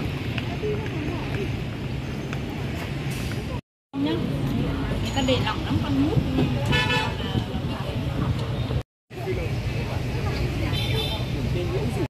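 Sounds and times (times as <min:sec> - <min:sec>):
people talking: 0:00.0 - 0:01.8, 0:03.3 - 0:12.0
traffic hum: 0:00.0 - 0:12.0.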